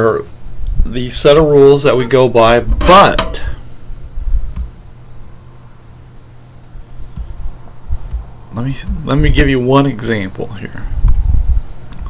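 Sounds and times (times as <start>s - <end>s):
high-pitched whine: 0.0s - 12.0s
low steady hum: 0.0s - 12.0s.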